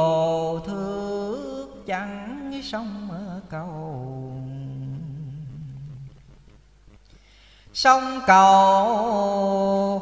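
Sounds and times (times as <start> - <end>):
man chanting low hummed note: 0.0 - 6.2.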